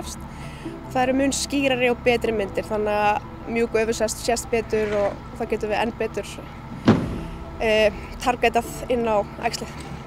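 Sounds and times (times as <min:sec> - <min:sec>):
woman talking: 0:00.0 - 0:00.2, 0:00.9 - 0:06.6, 0:07.6 - 0:09.8
steady low rumble: 0:00.0 - 0:10.0
sharp thump: 0:06.8 - 0:07.4.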